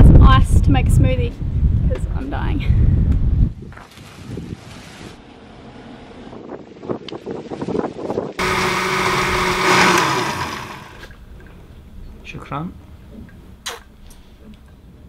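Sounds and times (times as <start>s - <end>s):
wind buffeting microphone: 0.0s - 5.2s, 6.1s - 12.2s
blender crushing ice: 8.4s - 11.1s.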